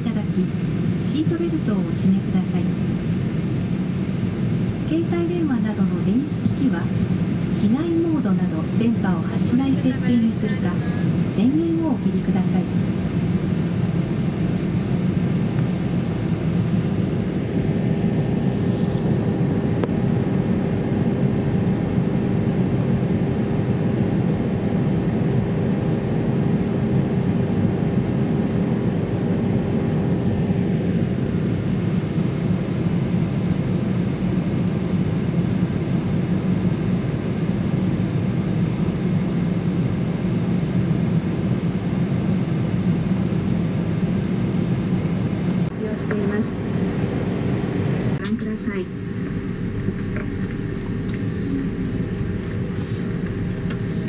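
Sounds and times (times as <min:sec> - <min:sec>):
thin steady whine: 0:00.0 - 0:40.0, 0:43.0 - 0:54.0
aircraft cabin hum: 0:00.0 - 0:54.0.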